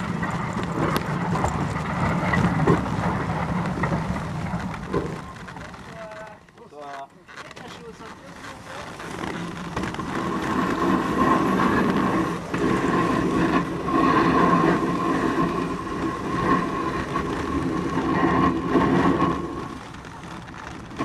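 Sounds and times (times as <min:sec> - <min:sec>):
bobsleigh runners scraping on ice: 0:00.0 - 0:21.0.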